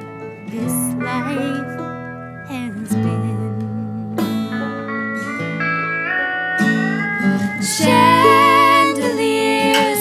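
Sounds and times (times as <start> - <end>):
banjo: 0.0 - 10.0
plucked acoustic guitar: 0.0 - 10.0
slide guitar gliding notes: 0.0 - 10.0.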